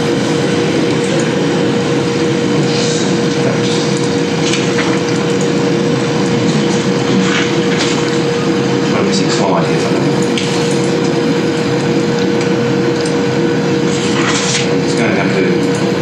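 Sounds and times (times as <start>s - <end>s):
room hum and hiss: 0.0s - 16.0s.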